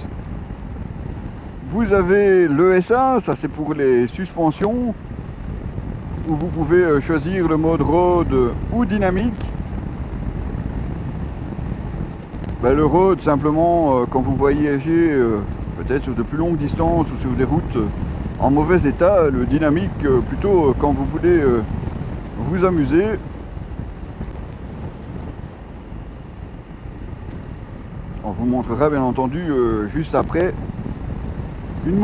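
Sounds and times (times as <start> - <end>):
motorcycle engine rumble: 0.0 - 32.0
wind noise on microphone: 0.0 - 32.0.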